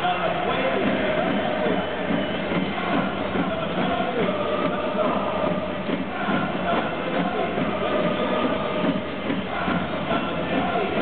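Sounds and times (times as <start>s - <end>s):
football crowd chanting: 0.0s - 11.0s.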